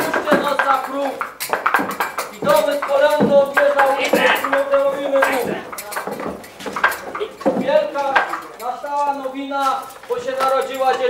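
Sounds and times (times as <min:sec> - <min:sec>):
clinking and clattering: 0:00.0 - 0:11.0.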